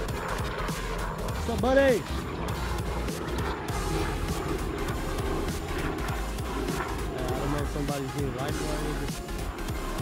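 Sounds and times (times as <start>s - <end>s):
background music: 0.0s - 10.0s
helicopter flying overhead: 0.0s - 10.0s.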